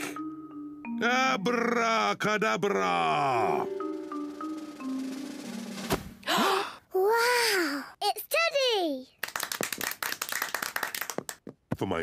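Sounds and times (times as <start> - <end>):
group clapping: 9.2 - 11.5.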